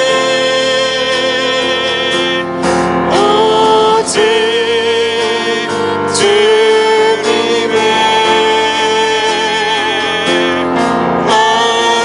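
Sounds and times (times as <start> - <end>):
worship song with band: 0.0 - 12.0.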